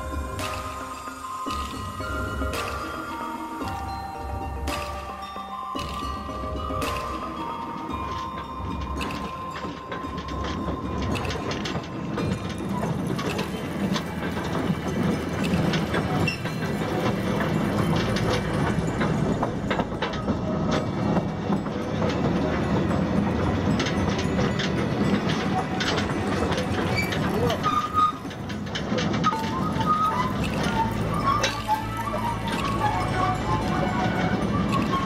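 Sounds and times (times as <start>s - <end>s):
background music: 0.0s - 35.0s
mine car rattling along rails: 0.0s - 35.0s.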